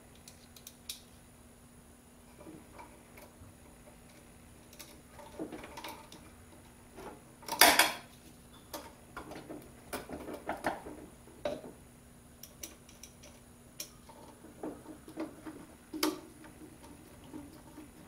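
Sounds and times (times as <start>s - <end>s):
small metallic clicks and taps: 0.1s - 1.0s.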